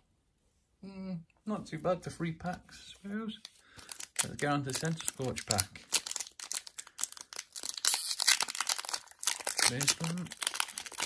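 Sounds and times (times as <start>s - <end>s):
foil wrapper crinkling: 3.0s - 11.0s.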